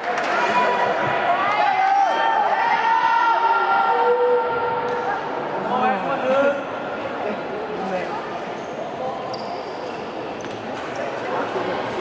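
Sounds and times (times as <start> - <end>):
chatter of many voices: 0.0 - 12.0.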